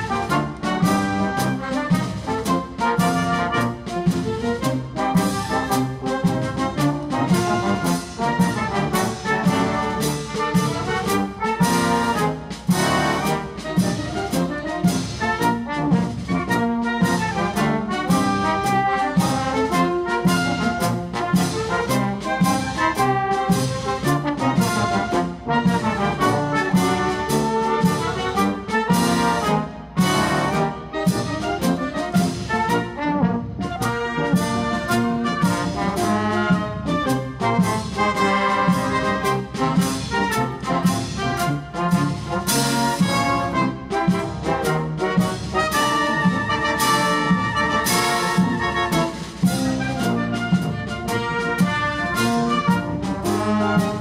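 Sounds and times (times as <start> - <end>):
brass band playing a march: 0.0 - 54.0.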